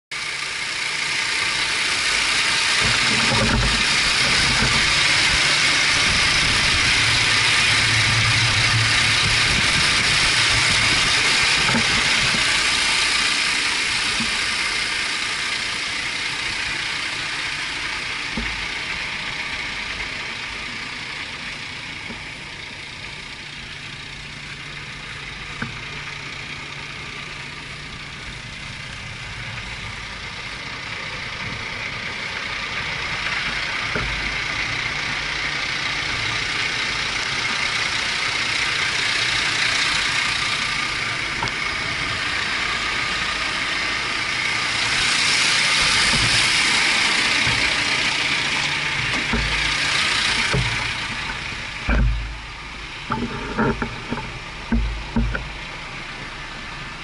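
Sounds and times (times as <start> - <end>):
diesel engine idling: 0.1 - 57.0.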